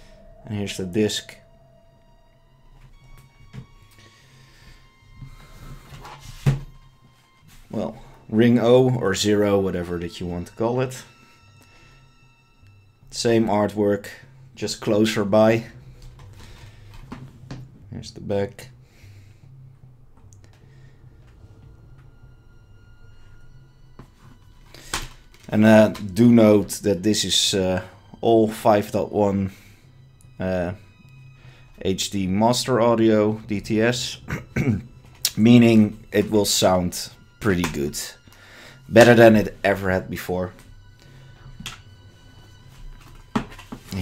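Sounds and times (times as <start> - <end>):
low room hum: 6.7 - 44.0.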